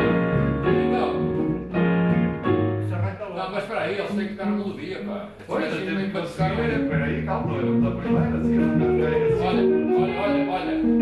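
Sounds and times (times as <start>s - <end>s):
small jazz combo playing: 0.0s - 11.0s.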